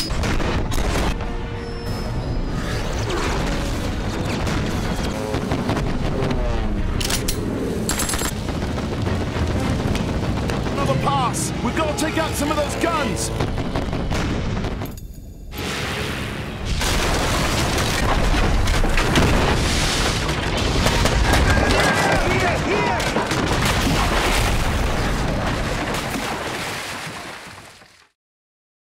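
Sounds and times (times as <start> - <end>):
explosions with low rumble: 0.1 - 1.6, 2.9 - 7.0, 8.3 - 11.1, 13.3 - 26.6.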